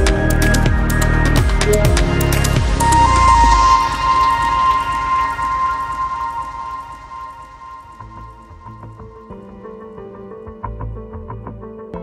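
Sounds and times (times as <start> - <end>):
electronic music: 0.0 - 12.0
held tone: 1.7 - 9.3.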